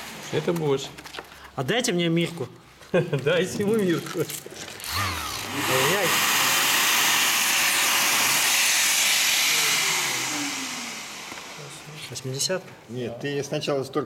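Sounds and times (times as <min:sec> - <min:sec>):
electric sander sanding wood: 0:04.8 - 0:12.4.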